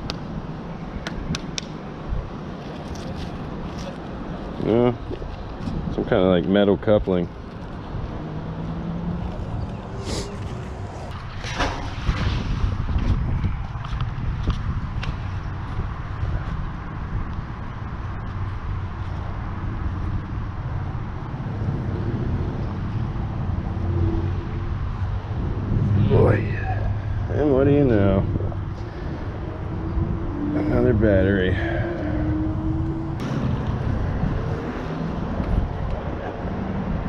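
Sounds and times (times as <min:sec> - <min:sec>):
traffic rumble over bridge: 0:00.0 - 0:37.0.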